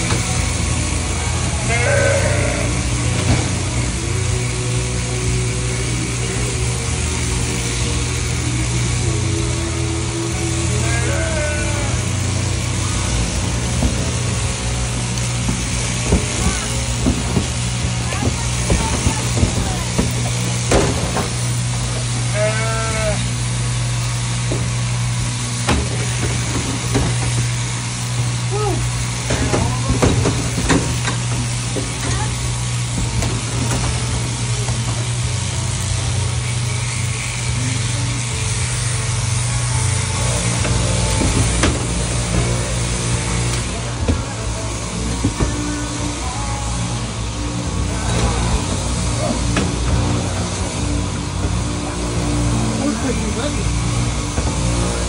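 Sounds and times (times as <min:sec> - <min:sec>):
shearing handpiece running: 0:00.0 - 0:55.0
sheep bleating: 0:01.6 - 0:03.1, 0:10.6 - 0:12.4, 0:22.2 - 0:23.4.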